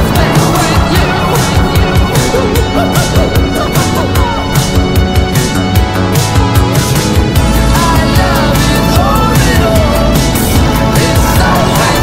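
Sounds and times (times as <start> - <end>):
music with fast beat: 0.0 - 12.0.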